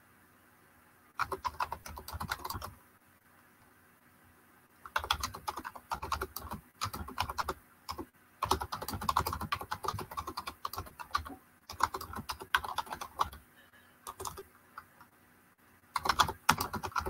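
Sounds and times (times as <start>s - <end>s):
typing on computer keyboard: 1.2s - 2.7s, 4.8s - 13.4s, 14.1s - 14.9s, 15.9s - 17.0s.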